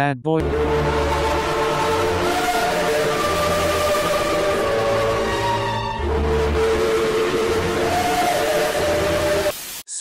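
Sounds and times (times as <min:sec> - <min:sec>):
cartoon time machine rushing whistle: 0:00.4 - 0:09.5.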